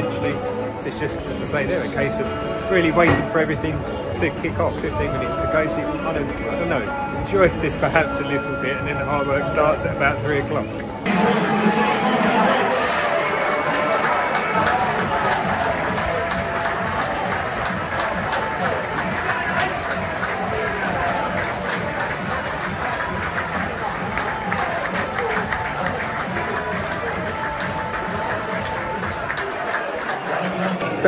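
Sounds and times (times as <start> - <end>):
music over sound system: 0.0 - 29.4
crowd clapping: 11.1 - 31.0.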